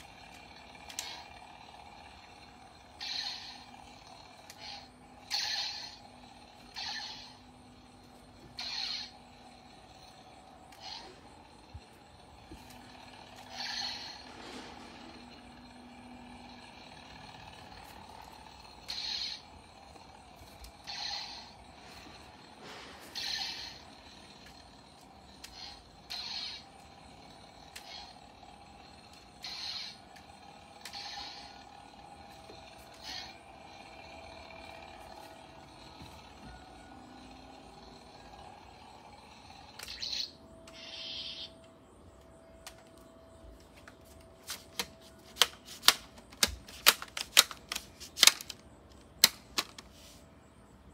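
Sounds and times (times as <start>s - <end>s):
toy lightsaber swishes: 0.0s - 36.5s, 38.8s - 41.5s
faint steady hum: 0.0s - 50.9s.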